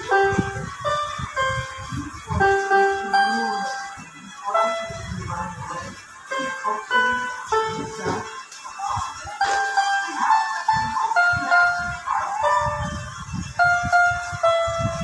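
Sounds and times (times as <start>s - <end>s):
harmonica playing tune: 0.0s - 5.7s, 6.3s - 8.4s.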